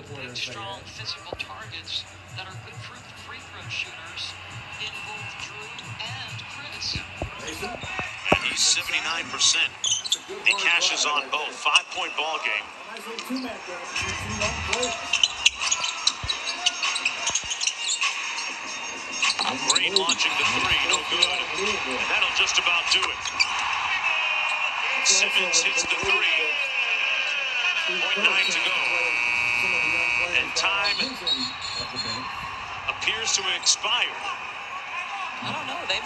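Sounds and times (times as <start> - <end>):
crowd noise: 0.0 - 36.0.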